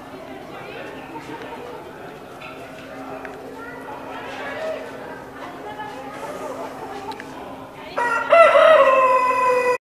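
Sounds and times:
rooster crowing: 8.0 - 9.8.

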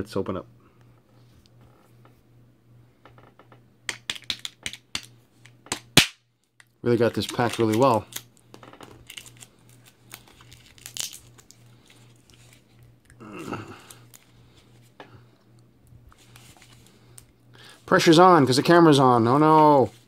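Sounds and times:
plastic packaging crinkling: 7.0 - 13.0
person murmuring: 13.1 - 14.1.

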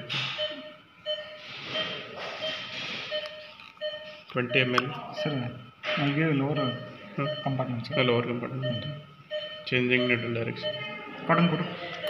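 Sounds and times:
patient monitor beeps: 0.0 - 12.0.

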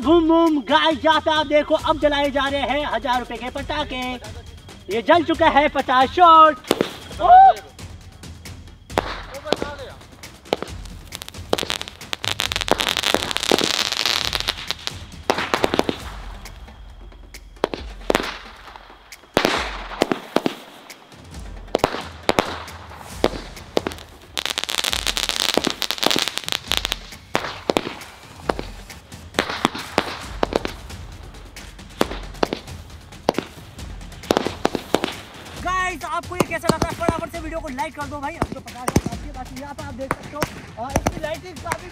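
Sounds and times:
firework tubes hissing: 0.0 - 41.9
firework bangs: 6.6 - 7.2, 8.8 - 35.7, 36.3 - 41.9.

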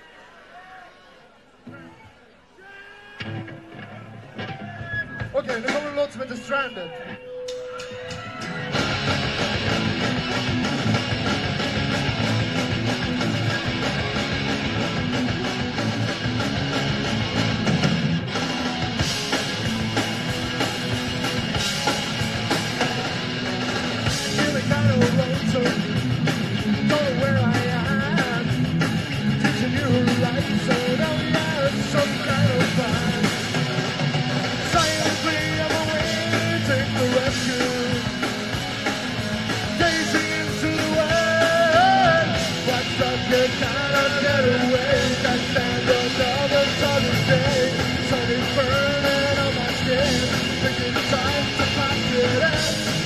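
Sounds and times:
punk rock band playing live: 3.2 - 53.0.

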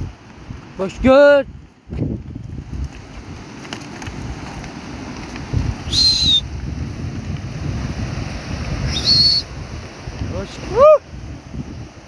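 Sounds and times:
wind rumbling on microphone: 0.0 - 12.0
footsteps on stones: 1.6 - 7.5
short high whistle: 5.8 - 6.5, 8.8 - 9.5.

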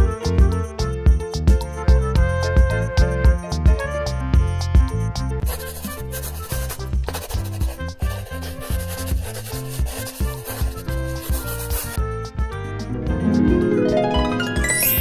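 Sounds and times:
background music: 0.0 - 15.0
marker scratching on paper: 5.4 - 12.0.

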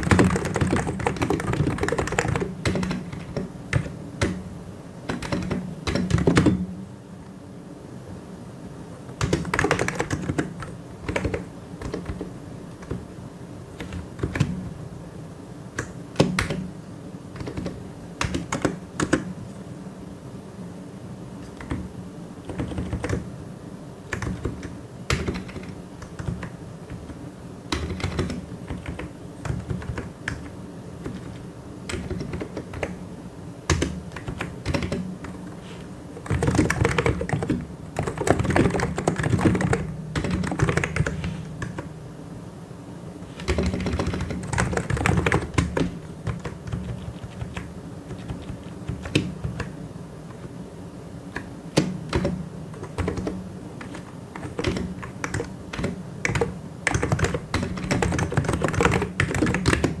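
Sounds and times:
typing on computer keyboard: 0.0 - 4.4, 5.1 - 6.6, 9.2 - 13.0, 13.8 - 14.6, 15.8 - 16.7, 17.4 - 19.3, 21.4 - 23.3, 24.1 - 33.0, 33.7 - 35.4, 36.2 - 41.9, 43.4 - 49.8, 51.4 - 60.0.

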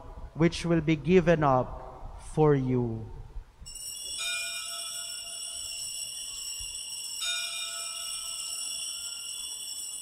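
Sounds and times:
altar bells ringing: 3.7 - 10.0.

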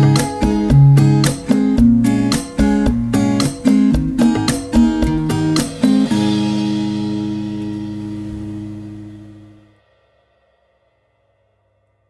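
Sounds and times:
guitar chord ringing out: 0.0 - 9.8.

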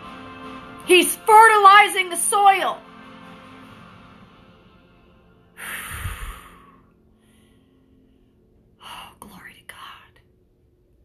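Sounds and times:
woman whispering: 8.8 - 10.3.

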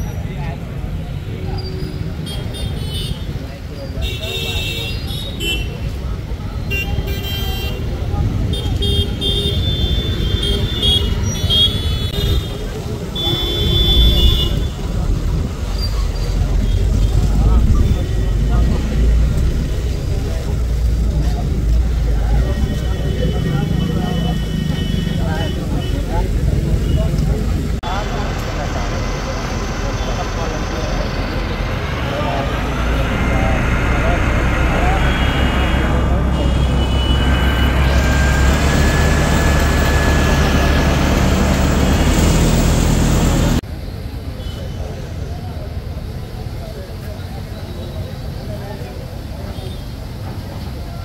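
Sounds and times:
crowd talking: 0.0 - 51.0.

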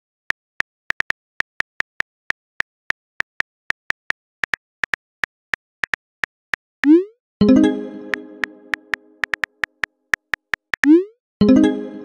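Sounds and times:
dramatic musical chord sting: 7.4 - 9.2
keyboard clicks: 8.1 - 11.0.

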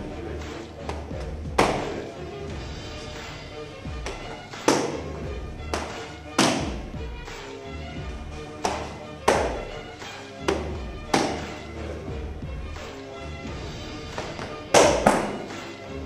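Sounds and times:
background music: 0.0 - 16.0
kicks smacking kick pads: 14.2 - 15.4.

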